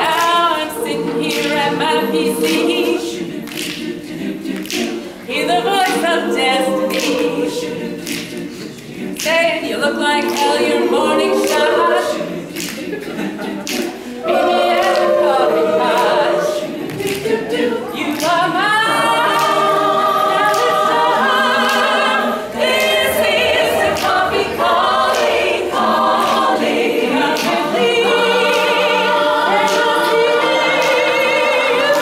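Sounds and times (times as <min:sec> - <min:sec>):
women's choir singing in harmony: 0:00.0 - 0:32.0.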